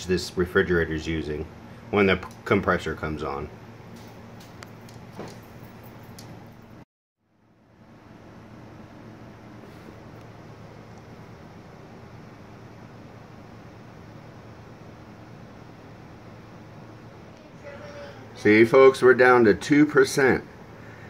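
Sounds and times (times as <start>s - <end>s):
refrigerator compressor hum: 0.0s - 21.0s.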